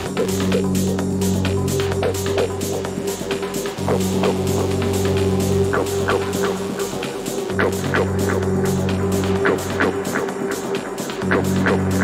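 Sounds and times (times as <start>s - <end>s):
techno music: 0.0s - 12.0s.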